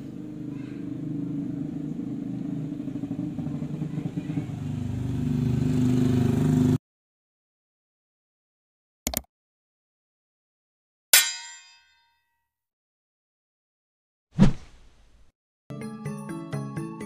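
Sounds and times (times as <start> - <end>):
vehicle engine running: 0.0 - 6.8.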